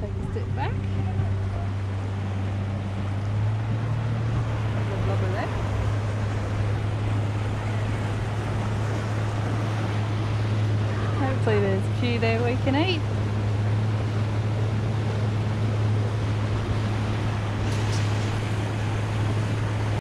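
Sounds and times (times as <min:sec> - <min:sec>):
boat motor humming: 0:00.0 - 0:20.0
rushing water: 0:00.0 - 0:20.0
wind: 0:00.0 - 0:20.0.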